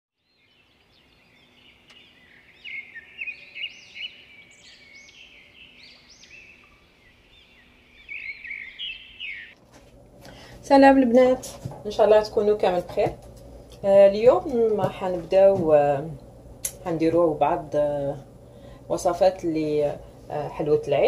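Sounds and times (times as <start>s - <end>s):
birds chirping: 0.2s - 9.6s.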